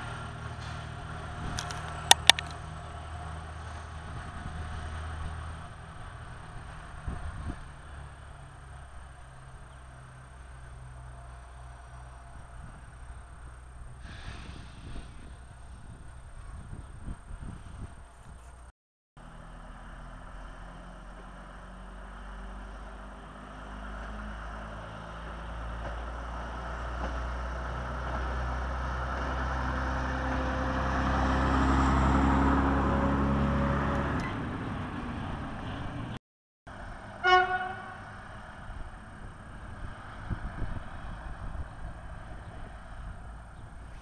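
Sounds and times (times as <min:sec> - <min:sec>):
rail vehicle engine and wheels: 0:00.0 - 0:44.0
short horn toot: 0:37.2 - 0:38.1.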